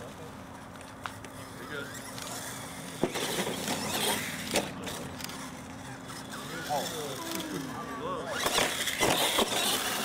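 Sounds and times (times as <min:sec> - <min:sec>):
toy truck motor and tyres: 0:00.0 - 0:10.0.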